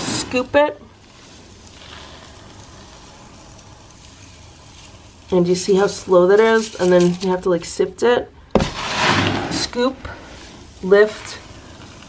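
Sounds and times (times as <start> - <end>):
cat litter trickling through scoop: 0.1 - 7.7, 8.7 - 12.0.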